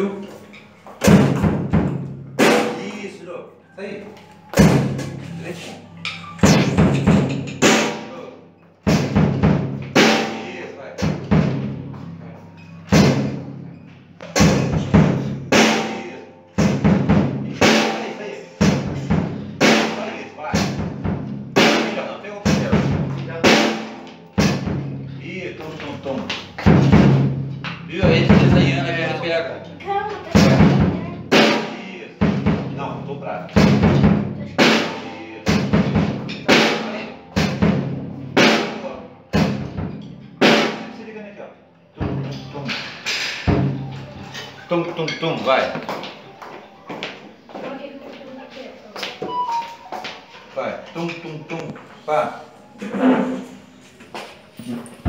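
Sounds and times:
slow drum kit beat: 0.3 - 3.0, 4.2 - 29.2, 29.9 - 41.0, 42.0 - 44.5.

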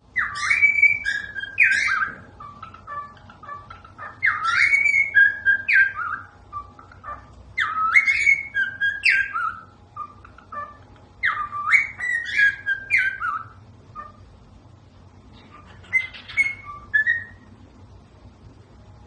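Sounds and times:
cockatiel whistling a tune: 0.1 - 14.2, 15.5 - 17.5.

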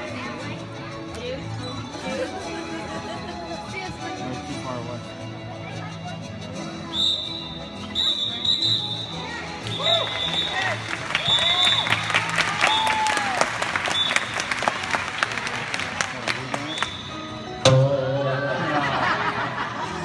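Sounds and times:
circus music: 0.0 - 20.0
high whistle-like tones: 6.9 - 12.0, 13.9 - 14.4, 16.6 - 17.4
audience clapping and calling out: 9.5 - 17.1.

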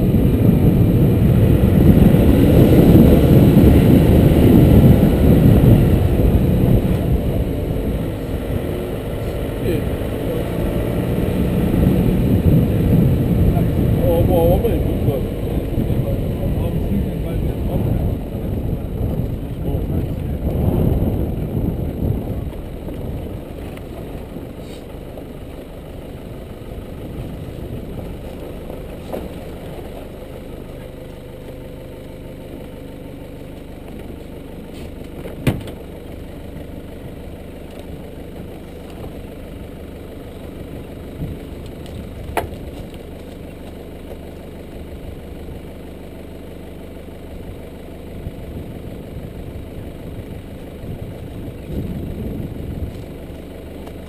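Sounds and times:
engine idling: 0.0 - 54.0.

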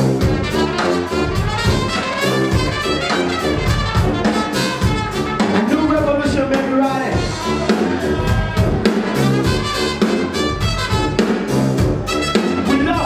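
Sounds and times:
saxophone: 0.0 - 5.6, 7.2 - 12.8
trombone: 0.0 - 5.8, 8.9 - 13.0
trumpets: 0.0 - 6.0, 7.2 - 13.0
drum kit steady beat: 0.0 - 13.0.

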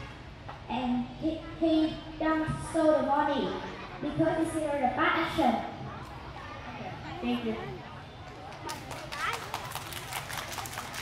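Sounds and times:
irregular clapping: 8.2 - 11.0.

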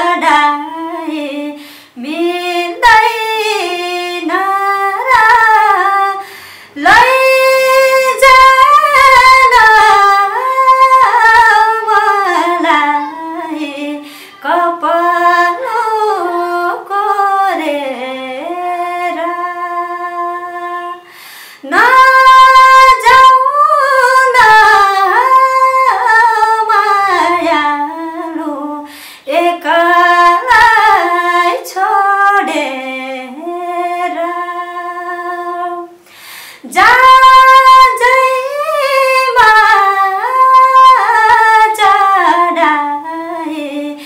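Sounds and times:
woman singing unaccompanied: 0.0 - 36.0, 36.6 - 44.0.

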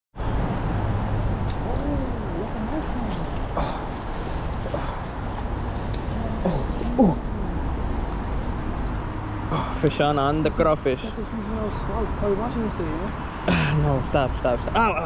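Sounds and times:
river flowing: 0.2 - 10.0.

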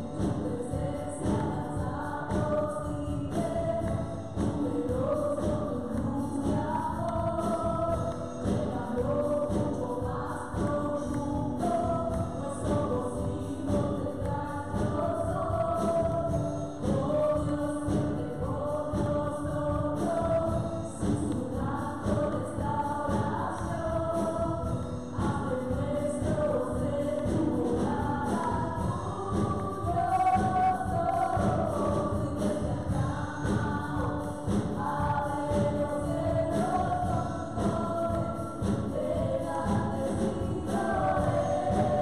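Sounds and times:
drums: 0.0 - 42.0
keyboard: 0.0 - 42.0
women singing together: 0.0 - 42.0.

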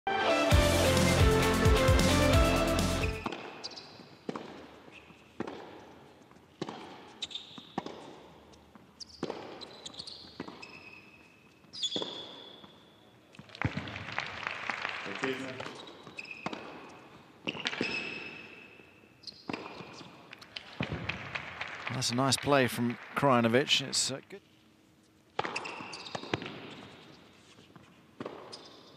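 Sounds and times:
theme music: 0.1 - 3.3
rackets striking tennis ball: 3.2 - 12.8, 15.6 - 21.2, 25.3 - 28.9
shoe squeaks: 3.3 - 5.5, 6.1 - 13.2, 15.6 - 20.3, 25.4 - 28.9.

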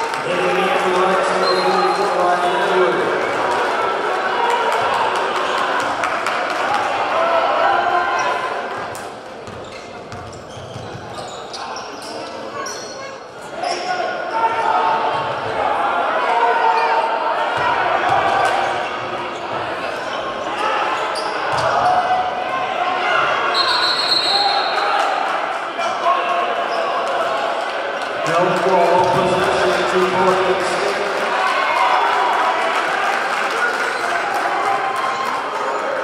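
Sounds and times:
crowd chatter and shouts: 0.0 - 36.0
basketball bouncing: 9.4 - 11.1
sneaker squeaks: 9.4 - 14.0, 20.9 - 22.1, 23.5 - 24.7.

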